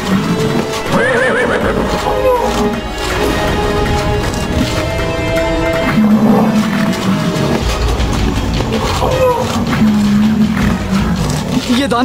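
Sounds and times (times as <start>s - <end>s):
horse whinnying: 0.0s - 4.8s
background music: 0.0s - 12.0s.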